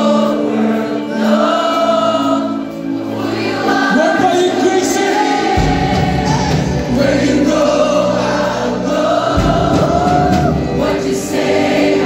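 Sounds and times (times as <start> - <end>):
several singers: 0.0 - 12.0
worship band playing: 0.0 - 12.0.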